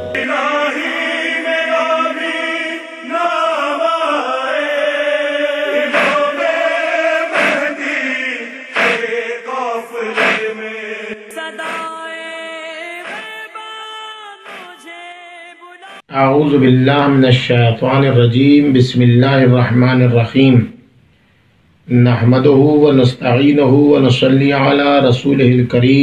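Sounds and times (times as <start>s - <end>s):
devotional vocal chant: 0.0s - 16.7s.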